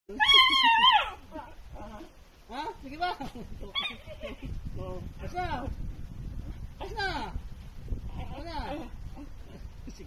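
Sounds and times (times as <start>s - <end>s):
dog howling: 0.1s - 1.3s.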